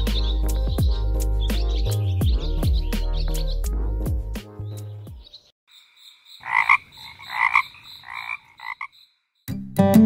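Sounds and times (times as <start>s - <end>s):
frogs croaking loudly: 5.7s - 9.4s
high-pitched frog chorus: 5.7s - 9.4s.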